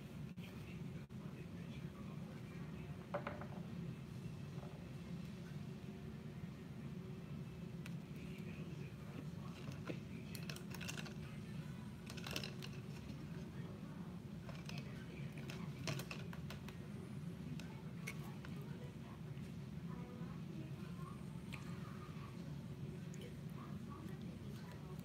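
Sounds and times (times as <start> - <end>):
steady low hum: 0.0 - 25.0
brush handles clattering in cup: 12.0 - 13.2, 15.4 - 16.6.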